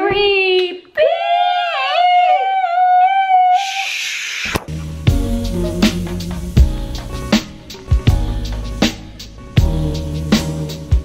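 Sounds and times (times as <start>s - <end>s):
music with low bass line: 4.7s - 11.0s
high voice singing long note: 9.6s - 11.0s.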